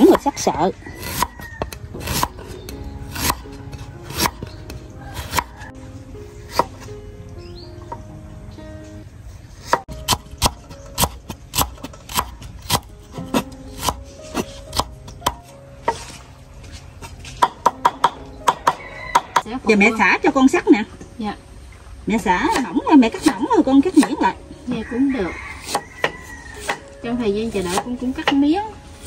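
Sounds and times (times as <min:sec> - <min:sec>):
soft background music: 0:00.0 - 0:29.0
cleaver chopping on wooden board: 0:04.1 - 0:05.6, 0:09.7 - 0:15.4, 0:17.4 - 0:19.4.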